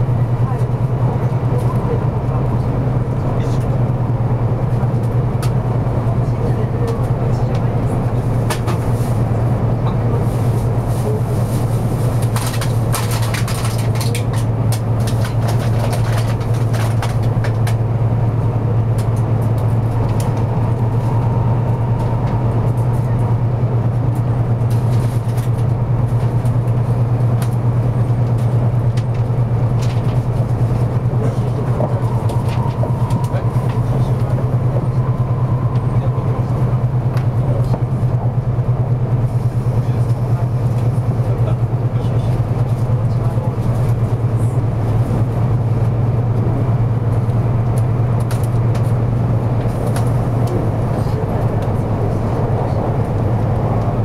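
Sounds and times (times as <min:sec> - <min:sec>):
train interior low hum: 0:00.0 - 0:54.0
wheels rumbling on rails: 0:00.0 - 0:54.0.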